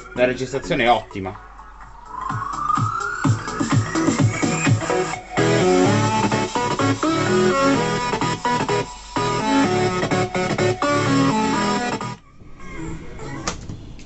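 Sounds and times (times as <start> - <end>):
instrumental music from speakers: 0.0 - 12.2.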